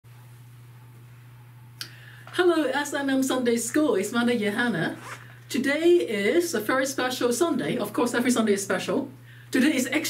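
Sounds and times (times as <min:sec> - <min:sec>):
low room hum: 0:00.1 - 0:10.0.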